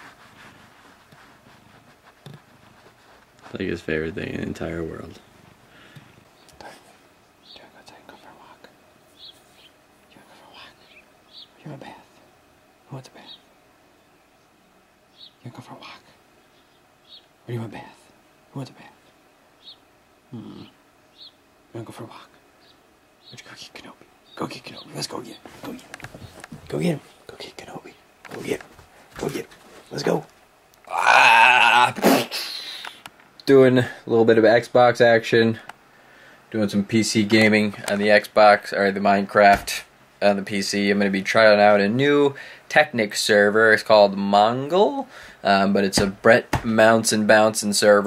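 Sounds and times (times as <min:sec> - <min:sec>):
person whispering: 0:07.6 - 0:08.7, 0:10.1 - 0:10.9, 0:11.6 - 0:12.2, 0:12.9 - 0:13.4, 0:15.5 - 0:16.2, 0:17.5 - 0:19.0, 0:20.3 - 0:20.8, 0:21.8 - 0:22.4, 0:23.4 - 0:25.9, 0:26.8 - 0:28.6
low voiced sound: 0:20.3 - 0:20.8, 0:30.8 - 0:32.2.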